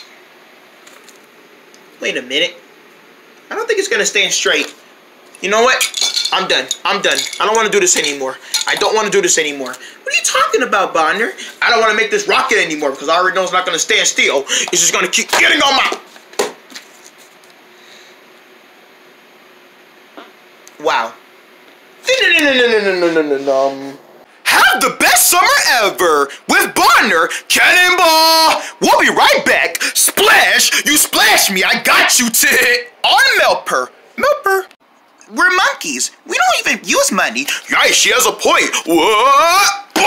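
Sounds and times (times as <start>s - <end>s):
low room tone hiss: 0.0s - 16.0s
room hiss: 17.1s - 40.0s.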